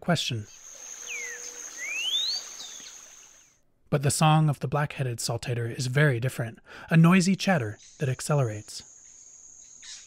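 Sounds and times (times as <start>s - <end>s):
high-pitched insect note: 0.5s - 3.4s
bird whistling a phrase: 0.9s - 3.2s.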